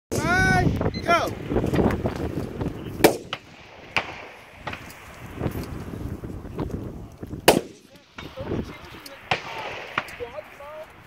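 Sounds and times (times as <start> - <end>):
rifle shots: 3.0 - 5.2, 7.4 - 10.7.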